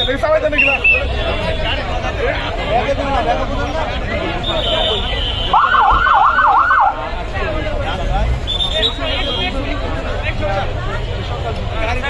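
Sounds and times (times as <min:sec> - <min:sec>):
street noise: 0:00.0 - 0:12.0
vehicle siren yelping: 0:05.6 - 0:07.1.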